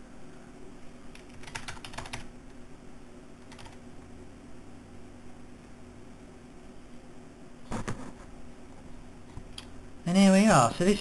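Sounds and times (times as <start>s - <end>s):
computer keyboard typing: 1.1s - 2.3s, 3.4s - 3.8s.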